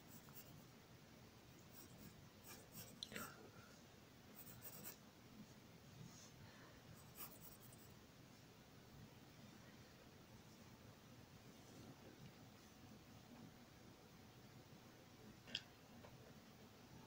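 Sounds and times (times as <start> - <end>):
pencil scratching on paper: 0.0 - 0.6, 1.7 - 3.2, 4.4 - 5.0, 7.0 - 7.9.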